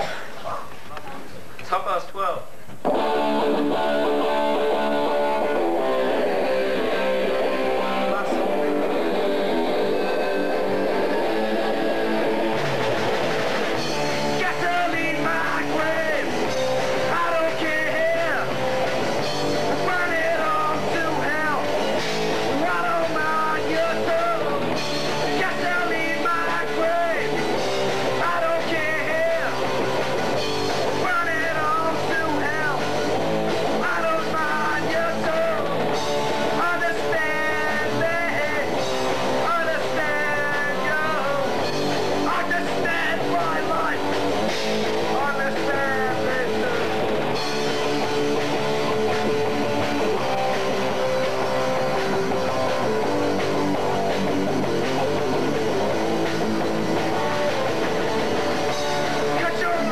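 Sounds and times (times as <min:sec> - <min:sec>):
bass and drums: 0:02.7 - 0:59.9
electric guitar chords: 0:02.8 - 0:59.9
person singing: 0:14.2 - 0:18.6, 0:19.6 - 0:21.8, 0:22.5 - 0:27.4, 0:28.0 - 0:29.8, 0:30.8 - 0:33.1, 0:33.7 - 0:35.8, 0:36.5 - 0:41.6, 0:42.2 - 0:44.2, 0:45.0 - 0:47.1, 0:59.0 - 0:59.9.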